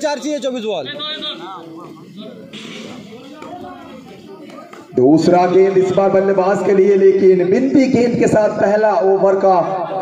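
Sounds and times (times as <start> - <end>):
commentary: 0.0 - 10.0
people talking in background: 0.0 - 10.0.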